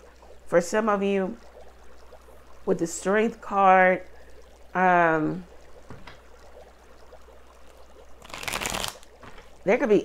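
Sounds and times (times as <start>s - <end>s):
cards shuffling: 8.2s - 9.4s.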